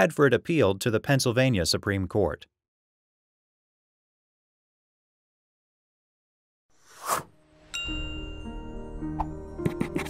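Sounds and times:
bright ringing chime: 7.6s - 9.0s.

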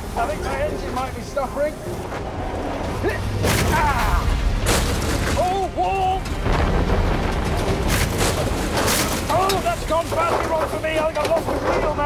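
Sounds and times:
heavy engine rumble: 0.0s - 12.0s
vehicles colliding: 0.0s - 12.0s
loud crash: 3.4s - 10.5s.

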